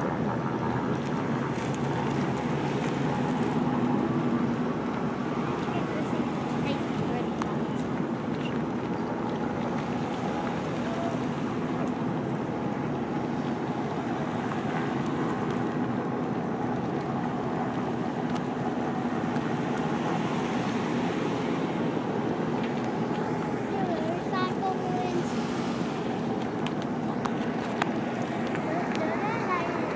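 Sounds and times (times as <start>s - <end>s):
vehicles driving slowly past: 0.0s - 29.9s.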